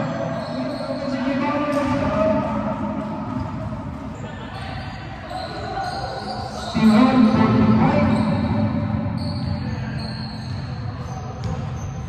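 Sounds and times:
players and spectators voices: 0.0s - 12.0s
basketball bouncing on court: 10.4s - 12.0s.

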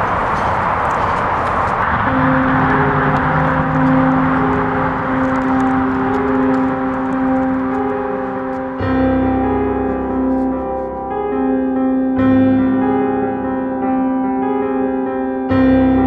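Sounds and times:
traffic hiss: 0.0s - 10.8s
piano music: 0.0s - 16.0s
low sustained music chord: 1.8s - 14.4s.

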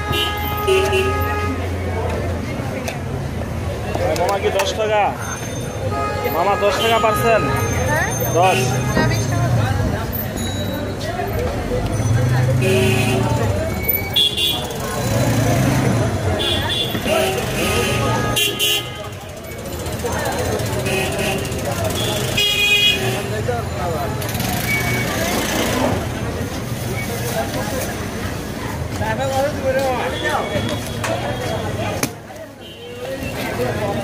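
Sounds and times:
traffic rumble: 0.0s - 34.0s
people talking: 0.1s - 34.0s
vehicle horn toots: 16.4s - 19.1s.

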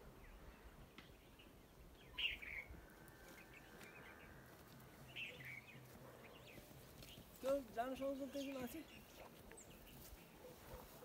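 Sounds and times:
faint outdoor background: 0.0s - 11.0s
person speaking: 7.4s - 9.0s.

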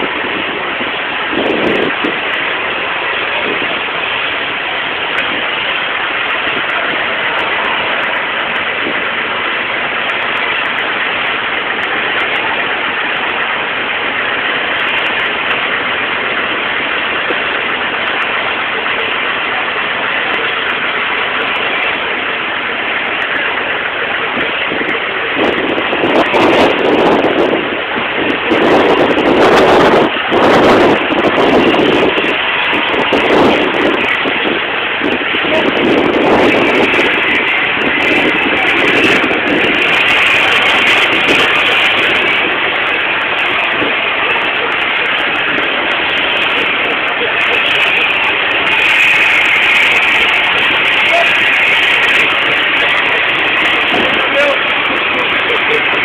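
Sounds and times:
hoses spraying water: 0.0s - 56.0s.

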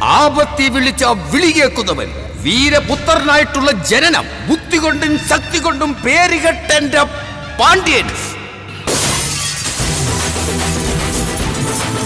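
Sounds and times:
dramatic film music: 0.3s - 12.0s
glass shattering: 8.9s - 11.1s.

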